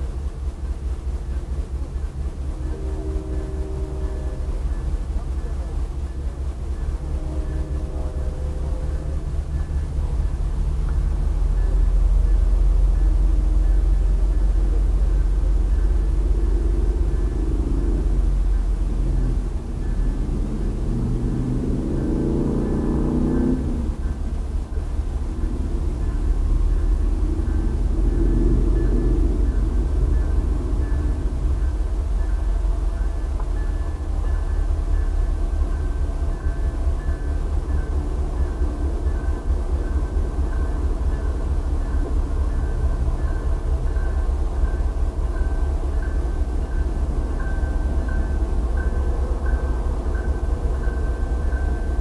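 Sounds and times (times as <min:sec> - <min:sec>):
low vehicle rumble: 0:00.0 - 0:52.0
passing vehicle engine: 0:06.8 - 0:52.0.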